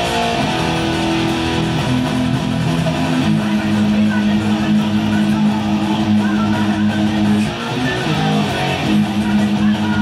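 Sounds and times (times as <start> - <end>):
distorted electric guitar note: 0.0 - 10.0.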